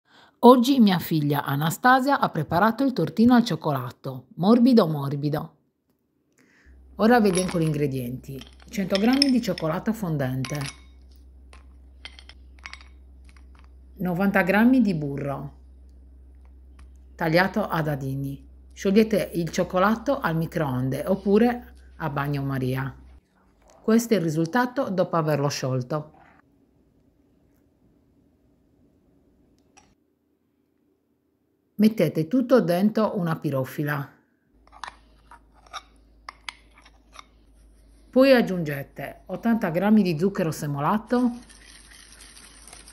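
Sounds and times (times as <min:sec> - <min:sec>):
low steady hum: 0:00.1 - 0:42.9.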